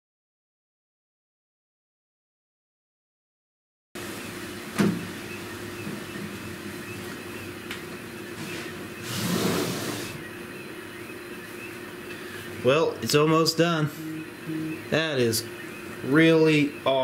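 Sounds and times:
stepper motors humming: 0:04.0 - 0:17.0.

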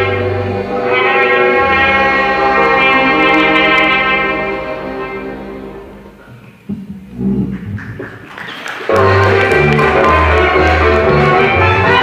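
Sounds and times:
folk band playing live: 0:00.0 - 0:06.3, 0:08.9 - 0:12.0.

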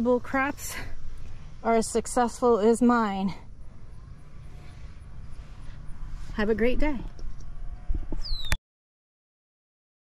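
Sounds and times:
low rumble on microphone: 0:00.0 - 0:08.6
high falling chirp: 0:08.2 - 0:08.6.

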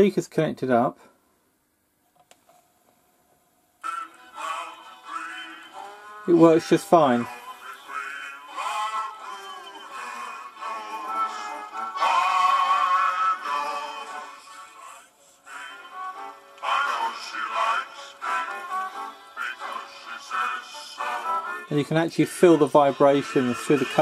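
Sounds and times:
record player music with singing: 0:02.2 - 0:24.0.

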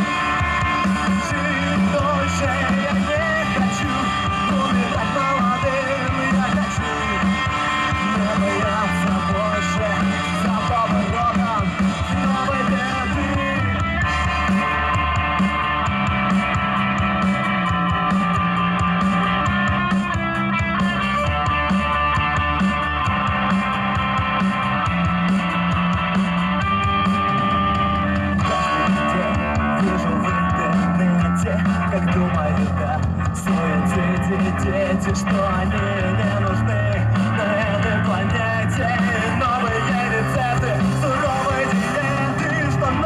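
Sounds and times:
bass guitar: 0:00.0 - 0:43.0
drum kit: 0:00.0 - 0:43.0
electric guitar: 0:00.0 - 0:43.0.

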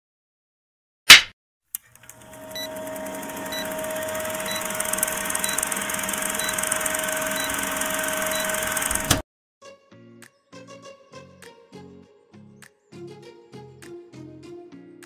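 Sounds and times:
film projector whirring and rattling: 0:01.8 - 0:09.2.

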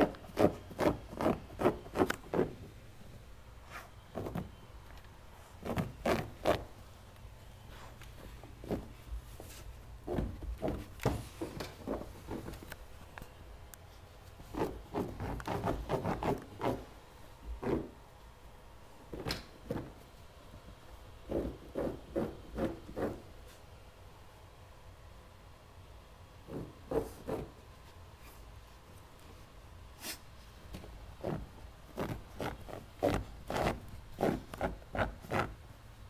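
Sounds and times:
puppy paws scratching a rug: 0:00.0 - 0:02.7, 0:03.6 - 0:04.6, 0:05.4 - 0:06.9, 0:07.6 - 0:13.0, 0:13.9 - 0:18.0, 0:21.2 - 0:23.7, 0:26.5 - 0:35.6.

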